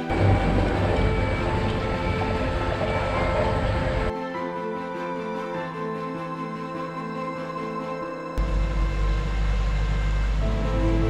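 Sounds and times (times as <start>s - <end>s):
loud steady rumble and rush: 0.0s - 4.1s, 8.4s - 11.0s.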